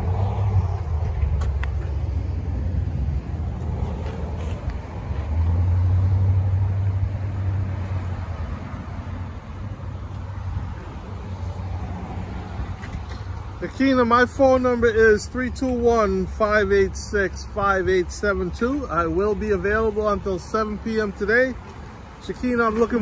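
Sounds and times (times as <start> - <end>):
road traffic rumble: 0.0 - 23.0.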